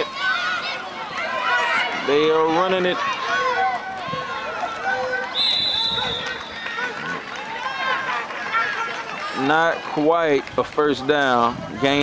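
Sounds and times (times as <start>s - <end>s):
crowd shouting: 0.0s - 12.0s
referee's whistle blast: 5.3s - 6.6s.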